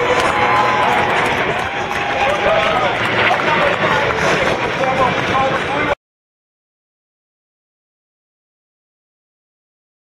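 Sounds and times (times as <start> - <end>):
jet aircraft roaring overhead: 0.0 - 6.0.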